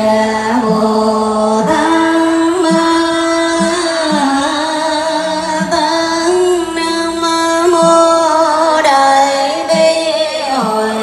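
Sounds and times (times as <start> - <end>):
woman singing devotional music: 0.0 - 11.0.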